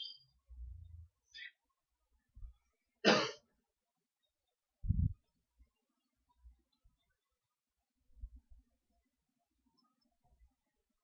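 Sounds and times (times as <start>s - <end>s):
person coughing: 3.0s - 3.4s.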